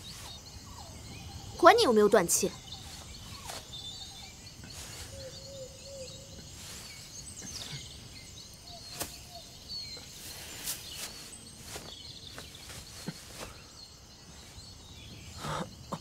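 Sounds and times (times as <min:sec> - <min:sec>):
bird chirps: 0:00.0 - 0:16.0.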